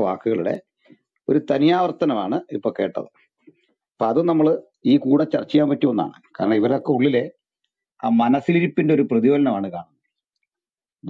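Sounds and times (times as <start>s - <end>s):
man speaking: 1.3s - 3.2s, 4.0s - 10.0s.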